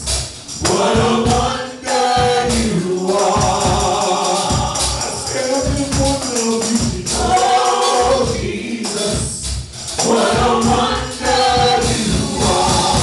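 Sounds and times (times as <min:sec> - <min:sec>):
tambourine: 0:00.0 - 0:13.0
men singing gospel: 0:00.5 - 0:13.0.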